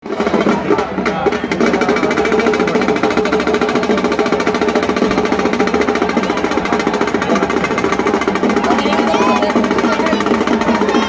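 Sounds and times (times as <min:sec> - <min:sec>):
fast drum roll: 0:00.0 - 0:11.0
music: 0:00.0 - 0:11.0.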